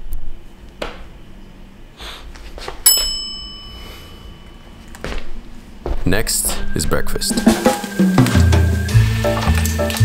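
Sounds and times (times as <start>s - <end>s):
bright bell-like ding: 2.9s - 4.7s.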